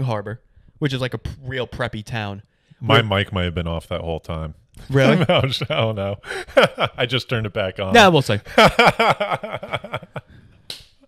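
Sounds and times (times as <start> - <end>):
man laughing into microphone: 5.0 - 7.0, 8.5 - 10.3.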